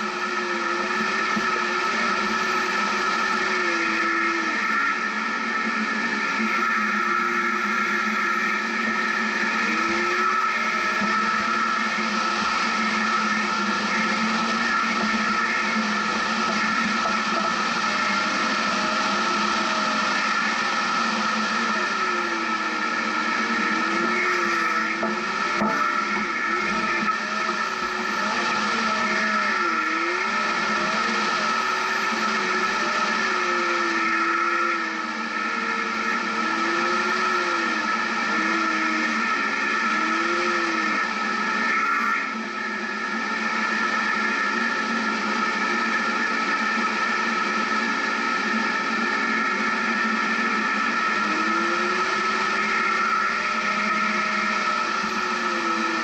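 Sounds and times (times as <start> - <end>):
car engine running at low revs: 0.0 - 56.0
steady high whine: 0.0 - 56.0.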